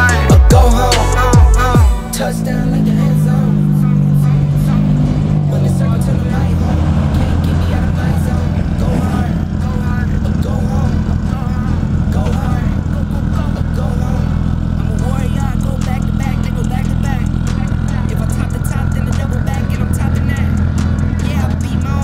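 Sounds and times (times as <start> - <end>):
background music: 0.0 - 22.0
people talking: 0.0 - 22.0
car engines driving slowly past: 0.6 - 22.0.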